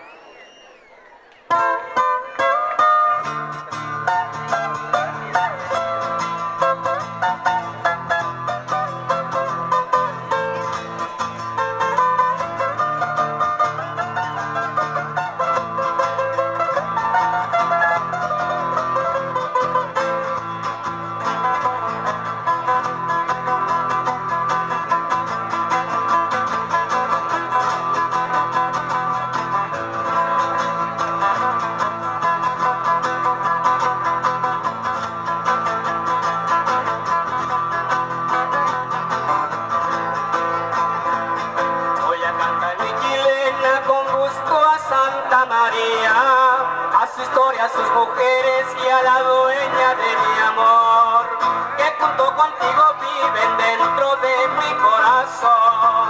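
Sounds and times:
acoustic guitars playing: 0.0s - 56.0s.

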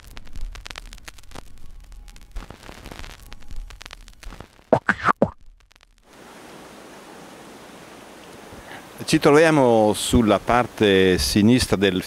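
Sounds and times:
river rushing: 6.2s - 9.0s.

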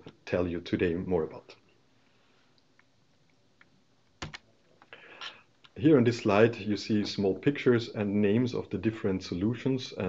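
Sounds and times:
sharp clicks: 3.6s - 4.4s.

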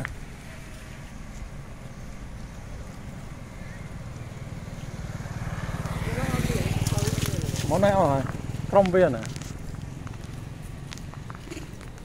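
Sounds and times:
vehicle engine running: 0.0s - 12.0s.

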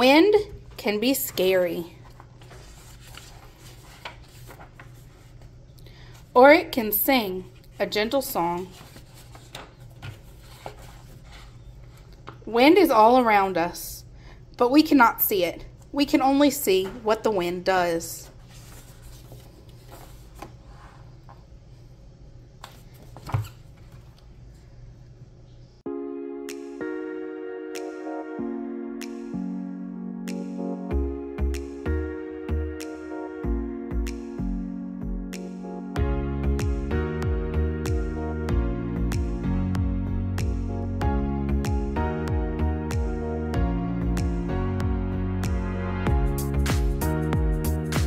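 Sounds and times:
paper page rustling: 1.3s - 5.6s, 7.6s - 12.1s, 18.2s - 21.1s
book closed onto table: 22.6s - 24.0s.

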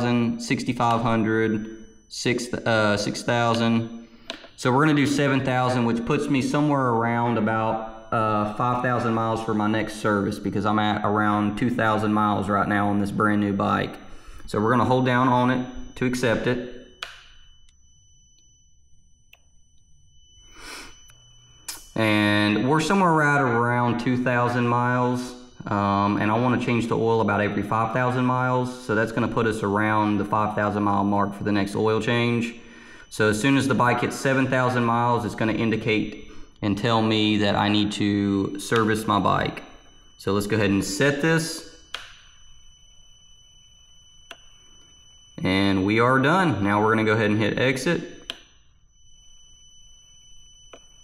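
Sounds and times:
faint high-pitched electronic whine: 0.0s - 51.0s
person exhaling: 20.5s - 21.0s.

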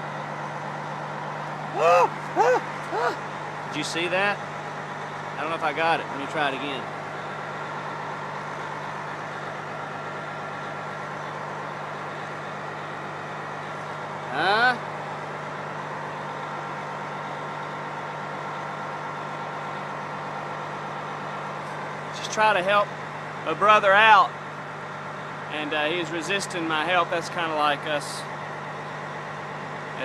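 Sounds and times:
low mechanical hum: 0.0s - 25.9s.

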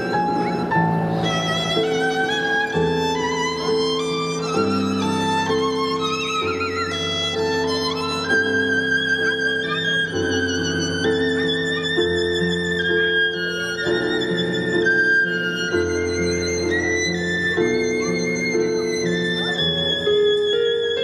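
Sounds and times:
keyboard chords: 0.0s - 13.2s
violin slow melody: 0.0s - 21.0s.

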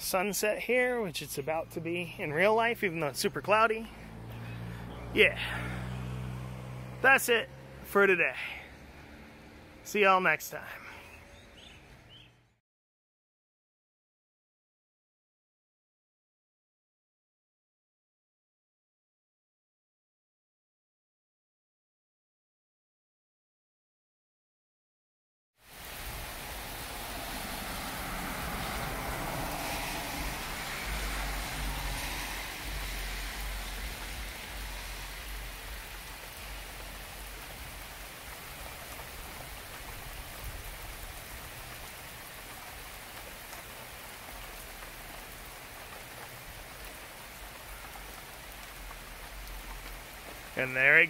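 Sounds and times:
rain on concrete: 0.0s - 12.4s, 25.6s - 51.0s.

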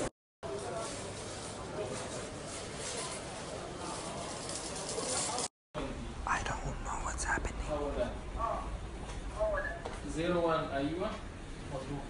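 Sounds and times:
person whispering: 6.2s - 7.8s.

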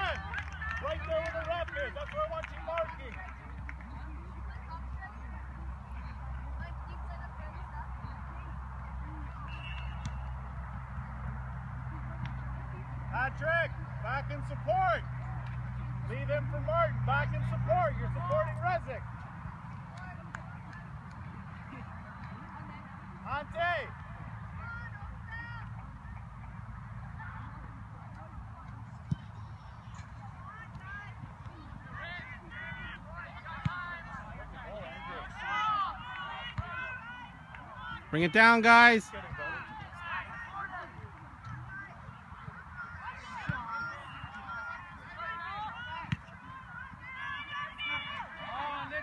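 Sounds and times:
soccer ball being kicked: 28.2s - 32.9s, 39.2s - 47.2s
distant shouts of players: 30.4s - 49.0s.

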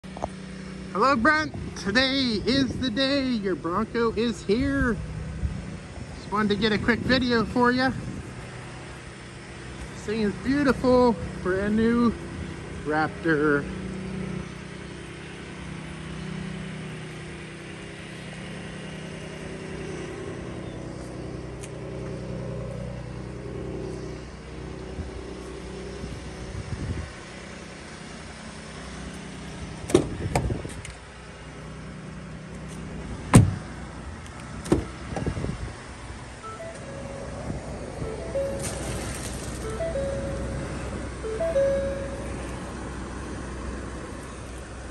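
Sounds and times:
low engine hum: 0.0s - 44.9s
truck door clunking shut: 29.8s - 30.9s, 33.3s - 33.7s, 34.6s - 35.4s, 36.5s - 40.6s.

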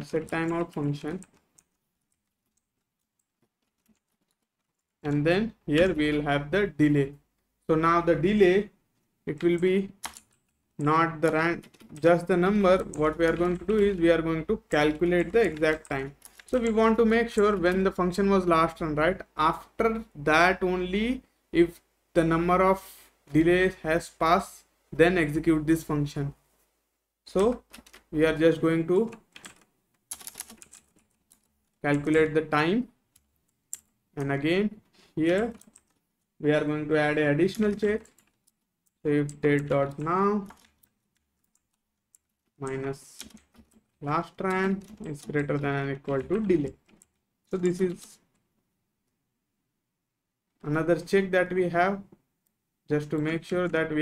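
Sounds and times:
soft keyboard keystrokes: 0.0s - 6.3s, 9.3s - 18.2s, 27.3s - 32.4s, 33.1s - 36.0s, 37.4s - 48.5s.

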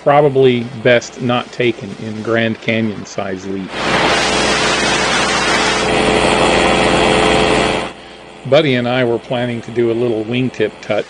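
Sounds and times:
propeller rushing hiss: 0.0s - 11.0s
droning paramotor engine: 3.7s - 11.0s.

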